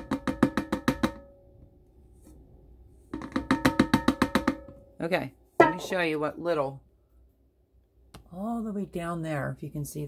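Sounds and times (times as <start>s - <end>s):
metal can knocked rapidly: 0.0s - 1.3s, 3.1s - 4.8s, 5.6s - 6.0s.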